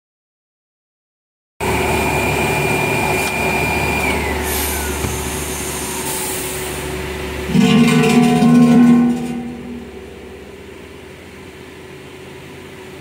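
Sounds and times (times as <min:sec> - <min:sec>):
machine hum with electric whine: 0:01.6 - 0:13.0.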